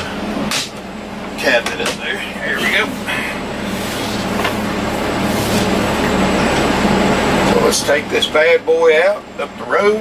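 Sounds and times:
diesel engine low hum: 0:00.0 - 0:10.0.

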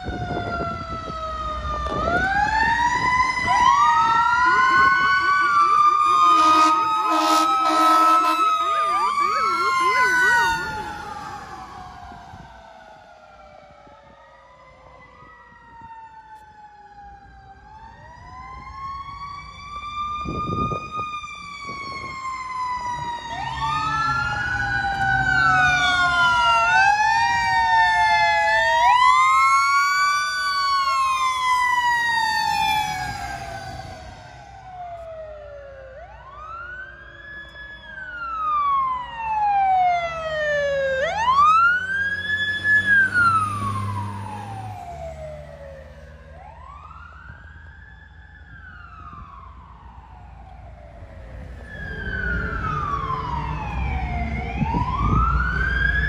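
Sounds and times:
sirens wailing: 0:00.0 - 0:56.0.

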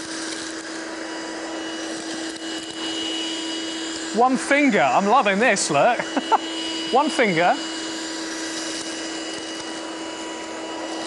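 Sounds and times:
handheld vacuum cleaner running: 0:00.0 - 0:11.0.

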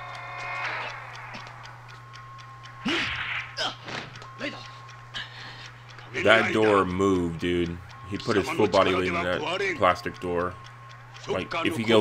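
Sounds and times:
voice-like cry: 0:00.0 - 0:01.7
steady low hum: 0:00.0 - 0:12.0.

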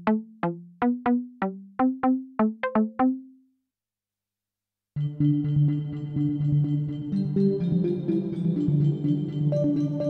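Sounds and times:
plucked synth note: 0:00.0 - 0:03.3.

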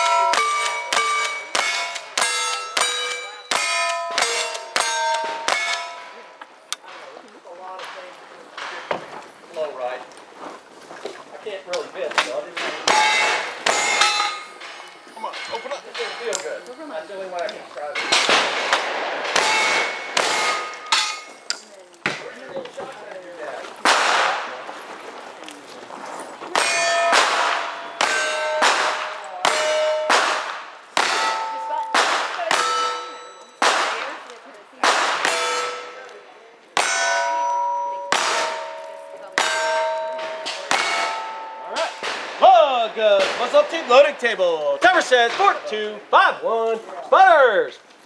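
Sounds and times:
steel target clanging: 0:00.0 - 0:06.5, 0:12.2 - 0:16.7, 0:17.4 - 0:21.7, 0:26.5 - 0:34.2, 0:34.8 - 0:36.2, 0:36.8 - 0:44.2
gunshots: 0:18.0 - 0:21.1, 0:23.8 - 0:24.6, 0:26.6 - 0:36.0, 0:39.4 - 0:42.5.

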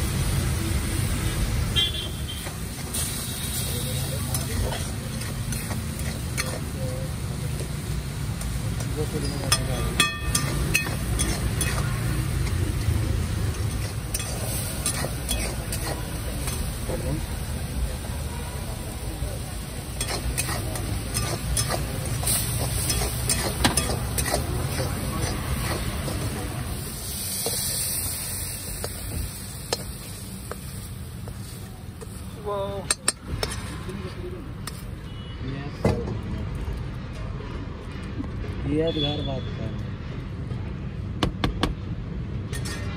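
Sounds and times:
noodles sizzling in a pan: 0:00.0 - 0:33.8.

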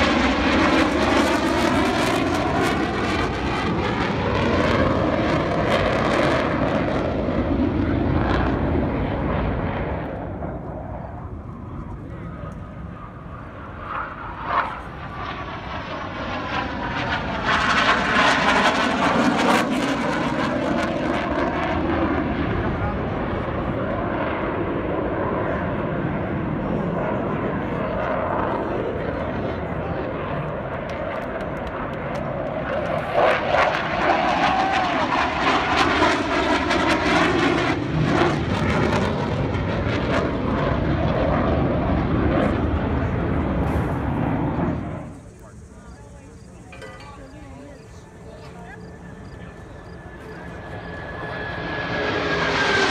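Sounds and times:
jets flying past: 0:00.0 - 0:52.9.

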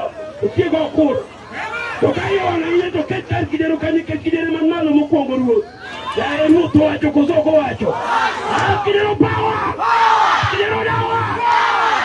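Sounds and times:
crowd shouting: 0:00.0 - 0:03.4, 0:05.6 - 0:12.0
man's voice: 0:02.0 - 0:05.6, 0:08.6 - 0:09.7, 0:10.4 - 0:11.4.

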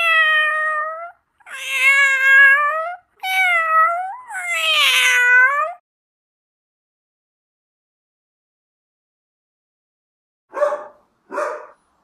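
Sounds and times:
cat meowing: 0:00.0 - 0:05.8.

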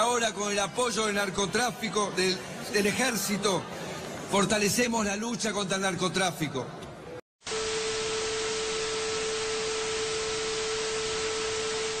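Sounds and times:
static hiss: 0:07.5 - 0:12.0
steady test tone: 0:07.5 - 0:12.0.

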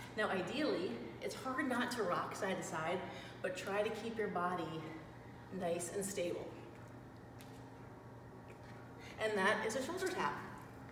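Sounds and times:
low steady hum: 0:00.0 - 0:10.9.

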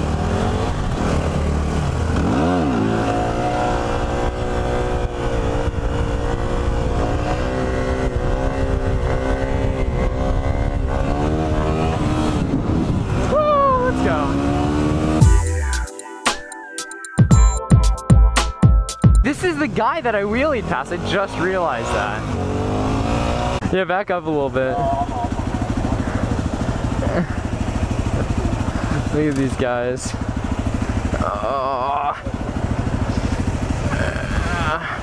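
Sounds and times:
motorcycle engine revving: 0:00.0 - 0:15.7, 0:19.2 - 0:35.0
wind rush on microphone: 0:03.8 - 0:14.2.

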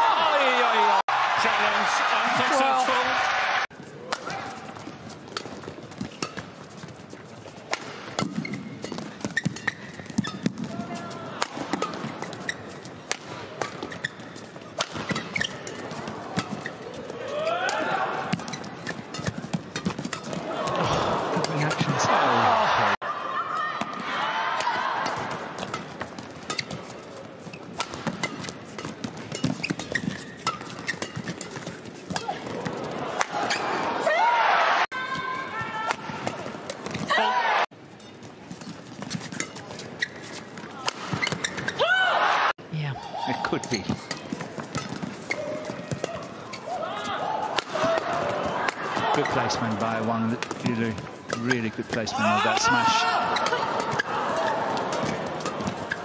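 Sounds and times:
arena crowd noise: 0:00.0 - 0:05.3, 0:10.4 - 0:13.7, 0:14.7 - 0:28.2, 0:32.1 - 0:37.9, 0:40.6 - 0:56.0
shoes squeaking on court: 0:03.8 - 0:11.1, 0:11.7 - 0:17.2, 0:18.2 - 0:20.7, 0:25.1 - 0:33.8, 0:37.8 - 0:41.8, 0:43.6 - 0:46.8, 0:50.4 - 0:56.0
rackets hitting shuttlecock: 0:04.0 - 0:04.6, 0:07.7 - 0:10.8, 0:11.4 - 0:14.1, 0:14.8 - 0:20.8, 0:27.7 - 0:33.6, 0:40.8 - 0:41.8, 0:47.4 - 0:49.3, 0:50.4 - 0:56.0.

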